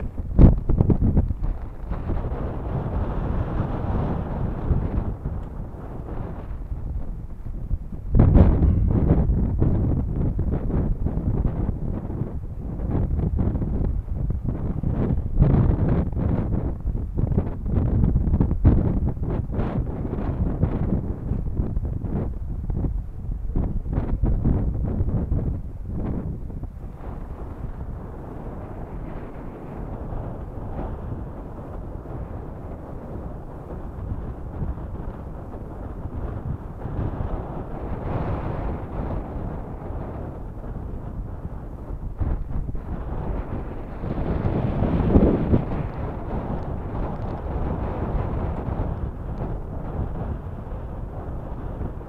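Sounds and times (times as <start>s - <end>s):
wind buffeting microphone: 0.0s - 52.0s.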